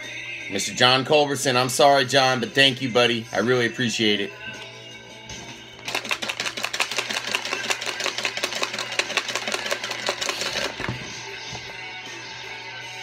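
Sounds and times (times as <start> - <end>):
background music: 0.0 - 13.0
paper slips rattling in plastic box: 5.9 - 10.8.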